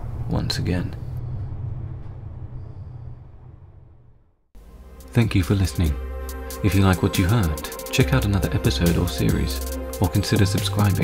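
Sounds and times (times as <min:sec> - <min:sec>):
train rumbling: 0:00.0 - 0:04.3.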